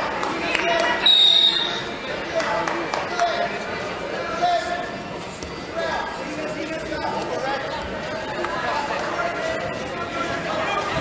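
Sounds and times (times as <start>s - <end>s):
hall chatter: 0.0s - 11.0s
referee's whistle: 1.0s - 1.8s.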